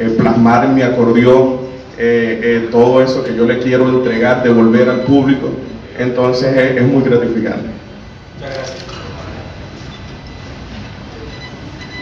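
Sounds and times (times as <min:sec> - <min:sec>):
room noise rumble and hiss: 0:00.0 - 0:12.0.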